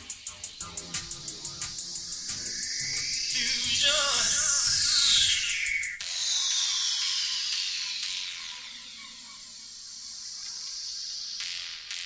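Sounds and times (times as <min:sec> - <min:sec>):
high-pitched hiss: 0:00.0 - 0:12.0.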